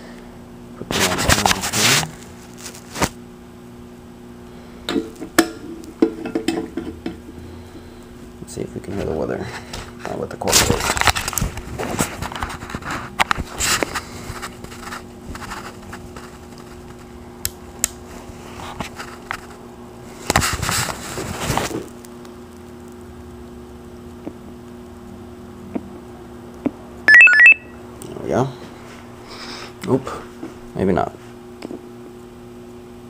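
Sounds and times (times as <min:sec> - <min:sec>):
faint low electrical hum: 0:00.0 - 0:33.0.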